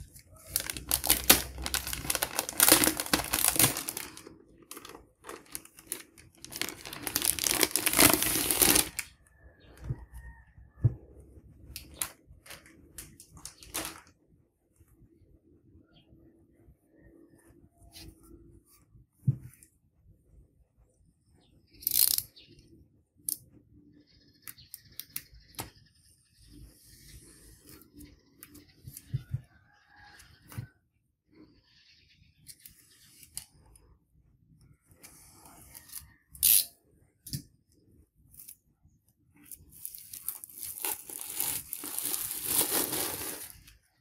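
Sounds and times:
plastic wrapping crinkling: 0.0 - 9.1, 11.8 - 14.1, 39.6 - 43.8
soft thumps of record: 9.6 - 11.8, 17.6 - 19.9.

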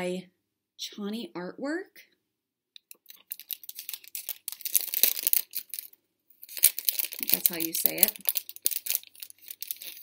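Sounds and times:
plastic packet crinkling: 2.9 - 10.0.

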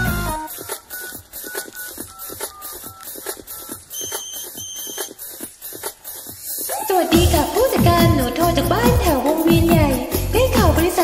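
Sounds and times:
pop song with fast beat: 0.0 - 11.0
short high beeps: 0.5 - 5.2.

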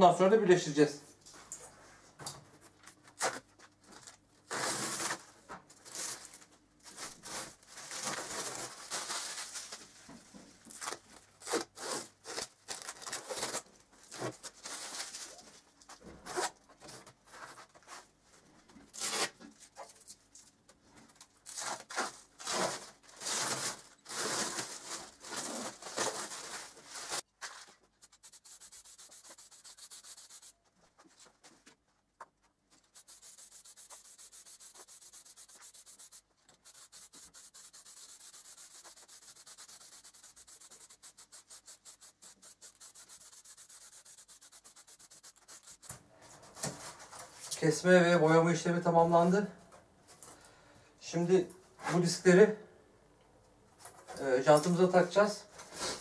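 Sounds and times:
spray paint can hissing: 28.0 - 30.5, 33.0 - 45.9.

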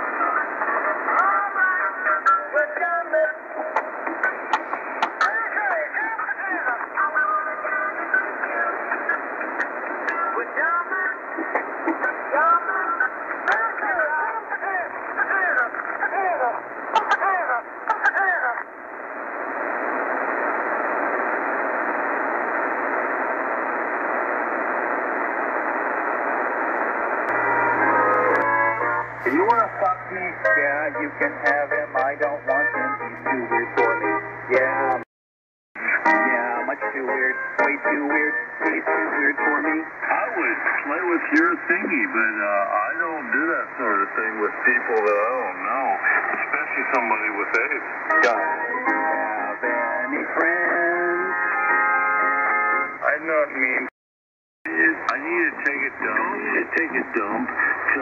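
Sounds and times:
sharp radio crackles: 0.0 - 35.1, 35.8 - 50.8, 54.7 - 58.0
shortwave radio static hiss: 0.0 - 35.1, 35.8 - 53.9, 54.7 - 58.0
brief radio tone: 27.3 - 29.9.

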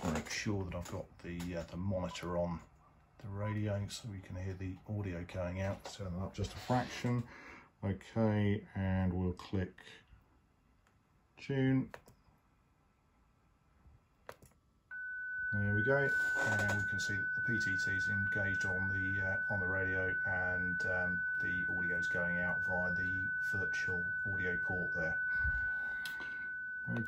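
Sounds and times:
faint mouse clicks: 11.9 - 12.3, 14.2 - 14.6
steady single tone: 14.9 - 27.0.

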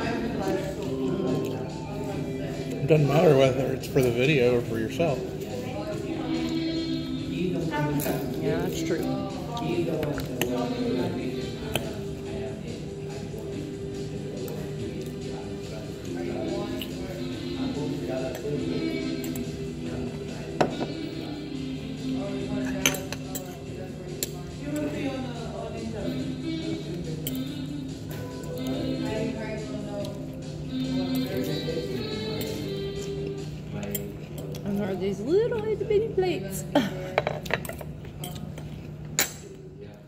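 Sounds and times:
background music: 0.0 - 40.0
metal fork clinking on plate: 22.6 - 23.6.

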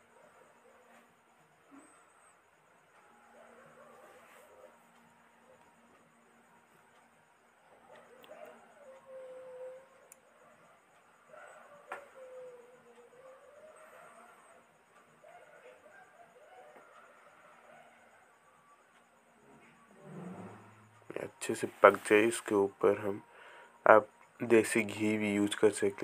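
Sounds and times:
faint wavering tones: 0.0 - 26.0.

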